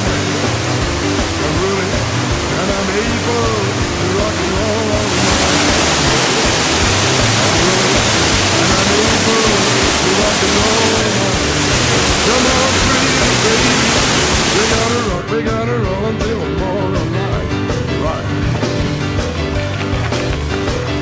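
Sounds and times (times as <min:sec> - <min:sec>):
waterfall rushing: 0:00.0 - 0:15.2
rock and roll music: 0:00.0 - 0:21.0.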